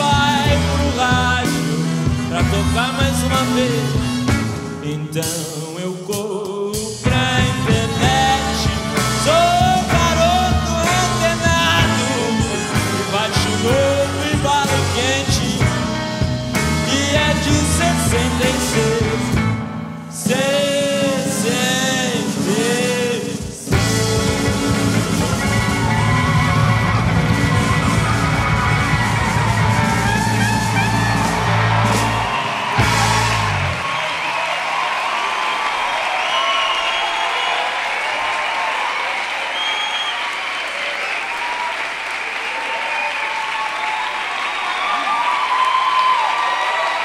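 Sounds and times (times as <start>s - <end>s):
rock band with brass section: 0.0s - 47.0s
audience applauding and cheering: 7.3s - 19.8s, 23.7s - 47.0s.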